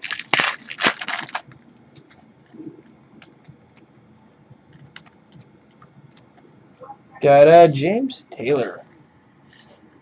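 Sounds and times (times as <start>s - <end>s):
foil wrapper crinkling: 0.0s - 2.2s.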